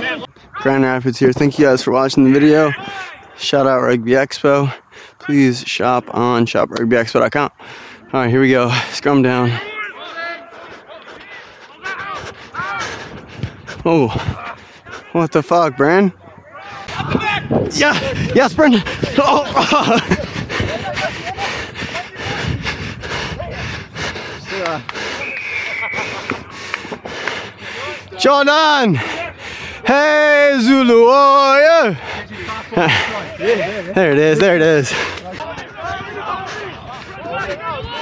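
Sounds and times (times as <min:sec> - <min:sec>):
players shouting across a field: 0:02.1 - 0:03.4, 0:09.1 - 0:38.0
heavy breathing: 0:04.7 - 0:05.3, 0:07.5 - 0:09.1, 0:10.0 - 0:15.2, 0:17.9 - 0:19.2, 0:19.9 - 0:29.9, 0:31.7 - 0:38.0
wind rushing on microphone: 0:16.2 - 0:24.9.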